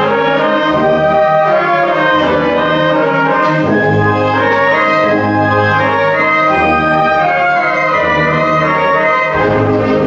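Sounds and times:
concert band playing: 0.0 - 10.0.

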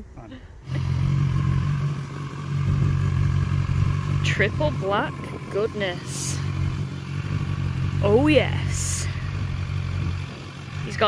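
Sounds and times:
motorcycle engine starting and idling: 0.6 - 11.0.

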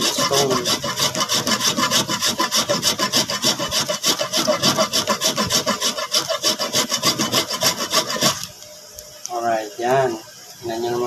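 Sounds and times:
salt grated on hand grater: 0.0 - 8.5.

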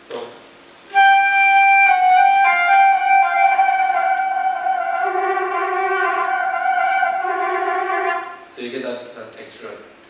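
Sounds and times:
flute sustained high note: 0.9 - 8.5.

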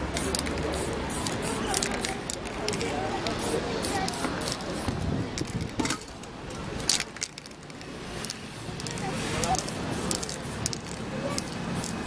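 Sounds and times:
spray-paint can hissing: 0.0 - 5.7, 6.8 - 12.0.

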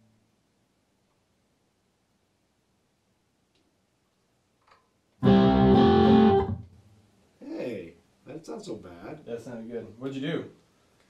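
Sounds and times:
electric guitar chord ringing: 5.2 - 6.7.

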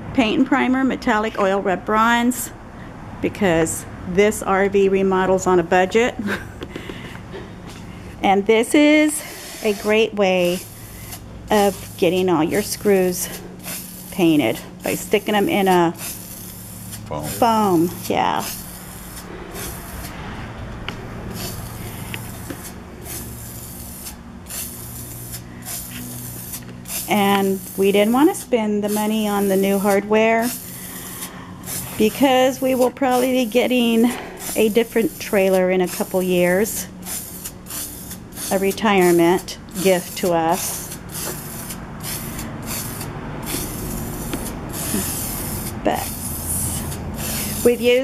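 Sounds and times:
aerosol spray can hissing: 8.9 - 20.2, 21.2 - 48.0.

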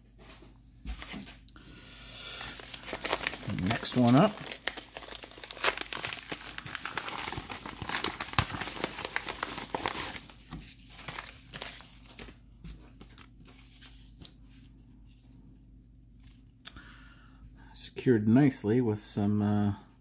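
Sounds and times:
bubble mailer tearing and crinkling: 2.4 - 12.4.

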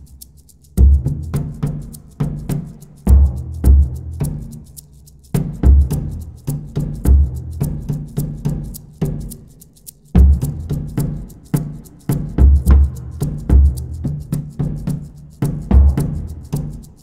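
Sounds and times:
deep drum beats: 0.0 - 17.0
higher-pitched drum beats: 0.0 - 17.0.

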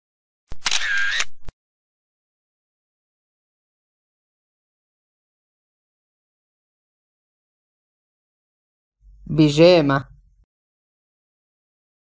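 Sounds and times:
sharp clicks: 0.5 - 1.3
mechanical whirr: 0.5 - 1.5.

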